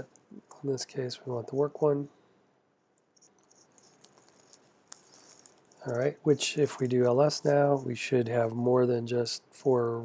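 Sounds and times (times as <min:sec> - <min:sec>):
man speaking: 0:00.0 - 0:02.1, 0:05.8 - 0:10.0.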